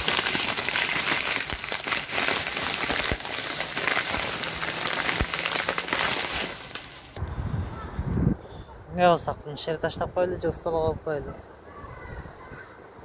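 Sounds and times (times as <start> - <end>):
plastic bags rustling: 0.0 - 7.2.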